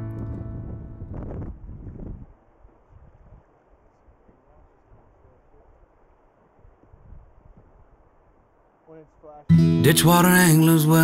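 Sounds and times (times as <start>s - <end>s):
wind buffeting microphone: 0.0s - 5.9s, 6.5s - 8.4s.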